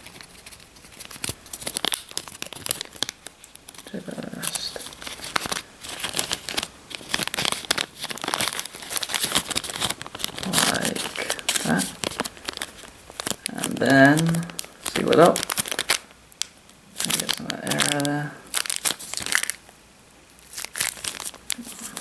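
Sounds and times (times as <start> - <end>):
plastic bag crinkling: 0.0 - 19.8, 20.4 - 22.0.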